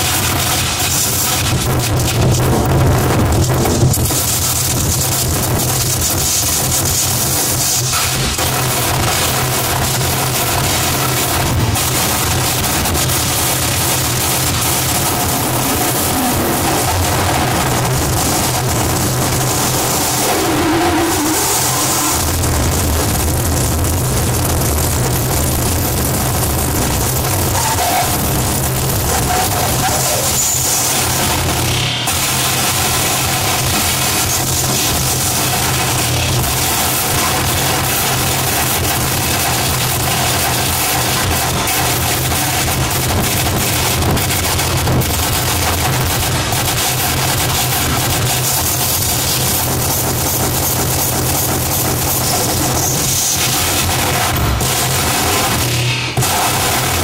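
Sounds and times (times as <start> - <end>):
distorted harsh noise: 0.0 - 57.0
low drone: 11.6 - 32.7.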